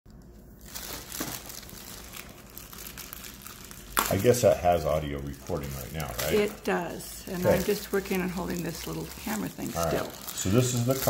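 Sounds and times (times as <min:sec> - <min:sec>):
plastic wrapping crinkling: 0:00.1 - 0:11.0.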